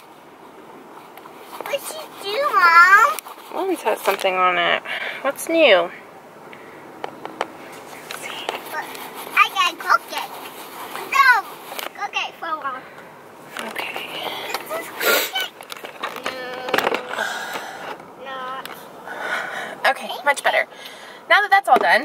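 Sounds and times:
young children's voices: 0:11.0 - 0:12.7.

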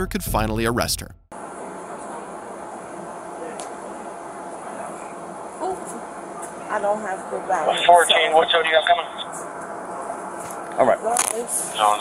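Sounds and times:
outdoor background hiss: 0:01.3 - 0:12.0.

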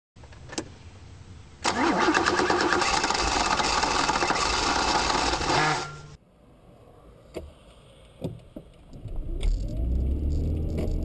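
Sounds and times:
car engine starting and revving: 0:09.0 - 0:11.0.

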